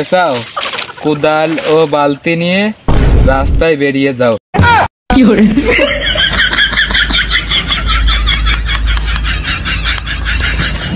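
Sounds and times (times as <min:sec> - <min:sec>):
high-pitched rapid laugh: 0:05.6 - 0:10.9.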